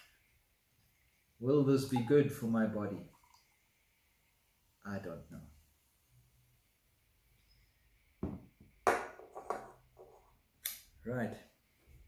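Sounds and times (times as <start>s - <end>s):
can and glass set on wooden table: 8.2s - 10.2s.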